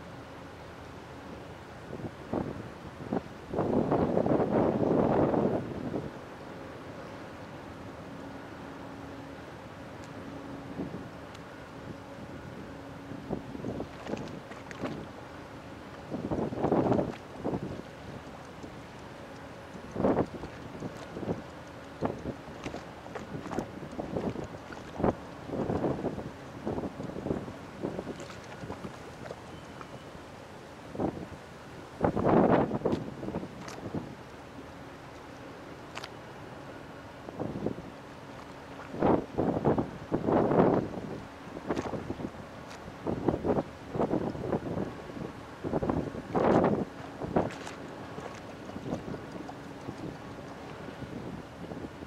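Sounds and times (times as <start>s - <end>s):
faint engine hum: 0.0s - 52.0s
wind buffeting microphone: 1.9s - 6.2s, 15.9s - 29.6s, 30.8s - 34.2s, 37.3s - 38.0s, 38.8s - 52.0s.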